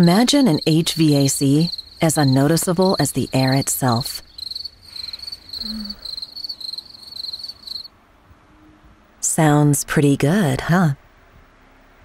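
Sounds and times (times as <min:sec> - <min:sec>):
crickets chirping: 0:00.0 - 0:07.9.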